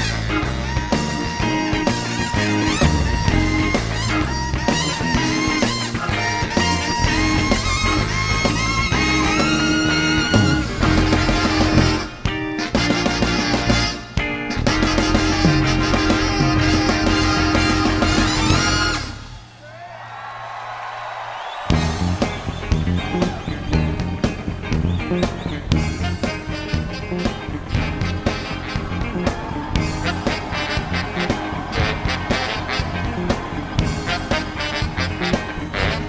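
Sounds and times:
live soul band playing: 0:00.0 - 0:19.4, 0:21.7 - 0:36.0.

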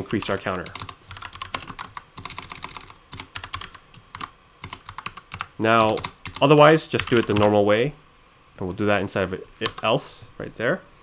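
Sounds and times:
typing on computer keyboard: 0:00.2 - 0:07.5.

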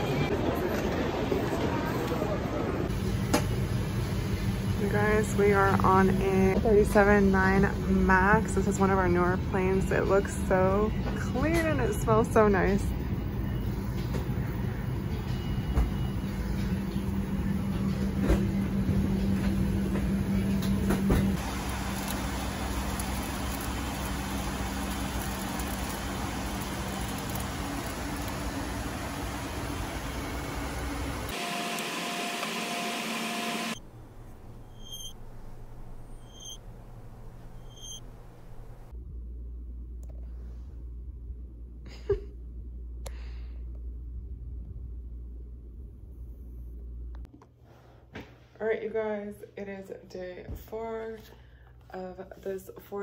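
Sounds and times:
airliner cabin noise: 0:00.0 - 0:31.4
low hum: 0:33.7 - 0:47.3
faint high chirp: 0:34.6 - 0:35.2, 0:36.0 - 0:36.6, 0:37.4 - 0:38.1.

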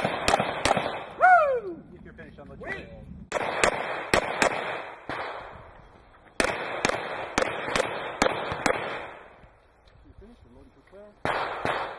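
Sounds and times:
pistol shots with echo: 0:00.0 - 0:01.2, 0:03.3 - 0:05.6, 0:06.4 - 0:09.4, 0:11.2 - 0:11.9.

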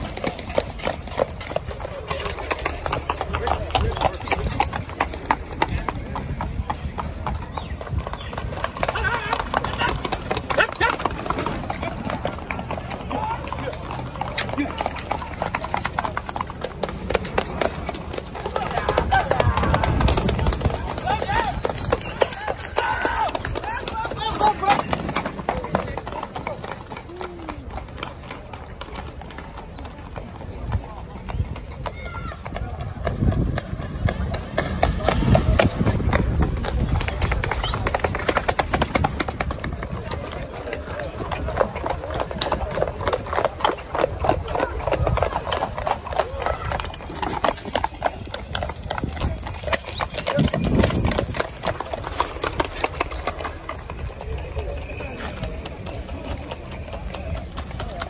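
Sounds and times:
crowd chatter: 0:00.0 - 0:58.0
hooves clip-clopping on tarmac: 0:00.0 - 0:58.0.

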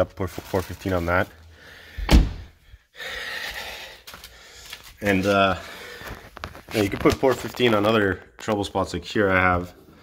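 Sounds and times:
low thump: 0:02.1 - 0:02.5.

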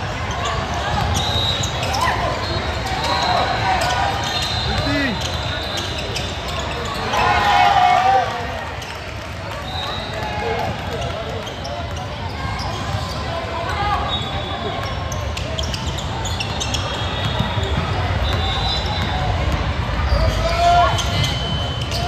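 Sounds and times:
sneakers squeaking: 0:00.0 - 0:07.6, 0:08.6 - 0:22.0
chatter of spectators: 0:00.0 - 0:22.0.

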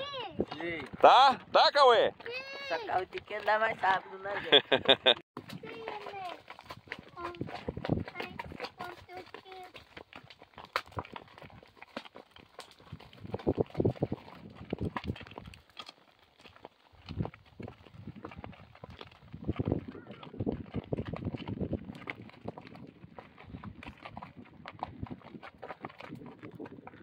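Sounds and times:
hooves on gravel road: 0:00.0 - 0:27.0
voices and laughter: 0:04.1 - 0:05.2.

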